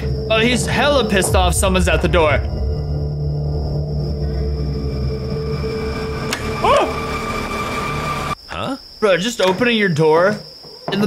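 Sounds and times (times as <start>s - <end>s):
low ominous drone: 0.0s - 8.4s.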